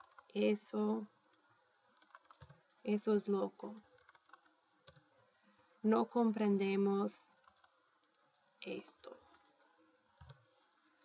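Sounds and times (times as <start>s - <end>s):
computer keyboard keystrokes: 0.0s - 0.3s, 2.0s - 2.6s, 4.0s - 5.0s, 10.2s - 10.4s.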